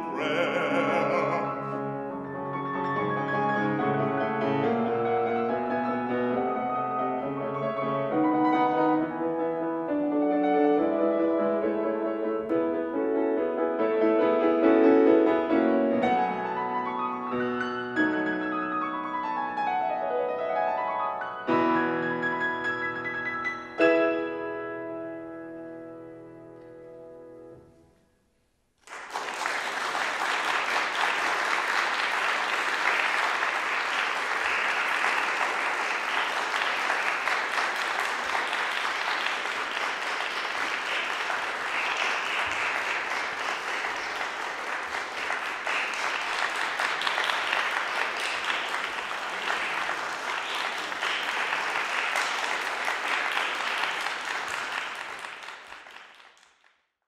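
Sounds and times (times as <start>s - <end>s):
audience applauding: 0.0s - 1.9s, 28.8s - 56.8s.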